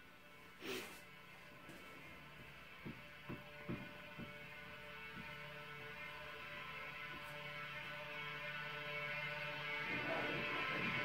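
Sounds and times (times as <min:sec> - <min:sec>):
faint steady hum: 0:00.0 - 0:11.0
soft knocks: 0:02.8 - 0:04.4.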